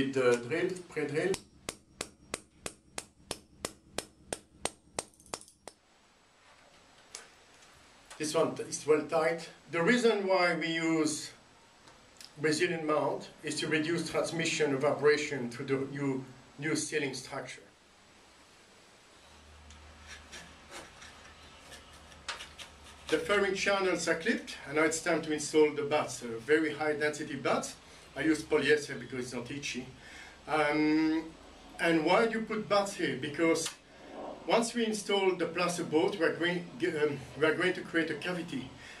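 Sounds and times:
low steady hum: 0.0 - 39.0
hammer striking into concrete: 1.4 - 5.5
soft rubbing and scraping: 19.3 - 23.4, 33.8 - 35.1.

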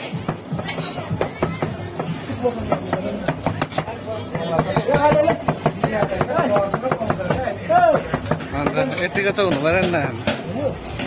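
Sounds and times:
cleavers chopping on plastic board: 2.7 - 11.0.

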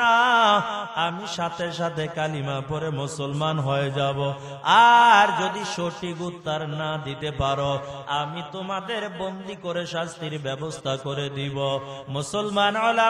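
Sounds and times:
man chanting a sermon: 0.0 - 13.0.

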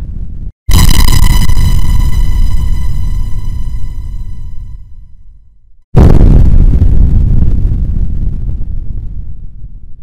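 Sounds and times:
boom with deep rumble: 6.0 - 10.0.

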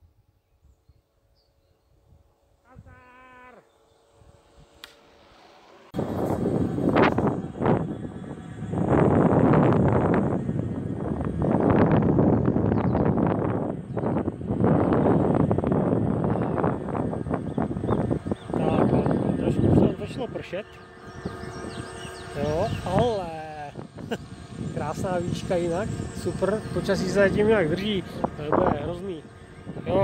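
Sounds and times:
wind buffeting microphone: 0.2 - 3.0, 3.7 - 4.9, 5.8 - 30.0
brief pitched whine: 1.6 - 30.0.

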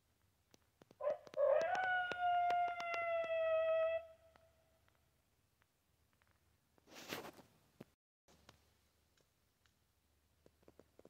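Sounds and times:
long howl: 1.0 - 4.2.

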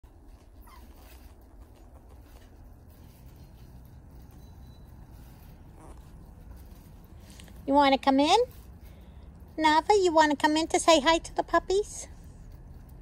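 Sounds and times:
low steady rumble: 0.1 - 13.0
puppy whimpering: 0.2 - 2.9, 4.2 - 6.4.

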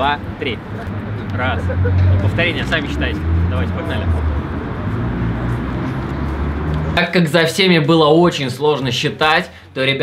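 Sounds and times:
low rumble of city traffic: 0.0 - 10.0.

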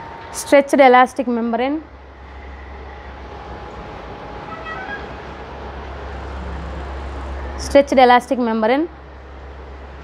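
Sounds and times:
low hum: 1.8 - 10.0.

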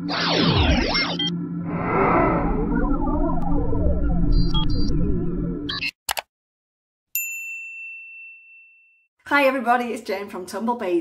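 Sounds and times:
intro music with electronic blips: 0.0 - 5.8.

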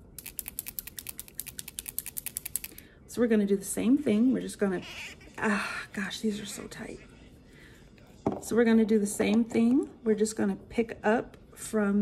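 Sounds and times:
nail polish bottle shaken: 0.1 - 2.8.

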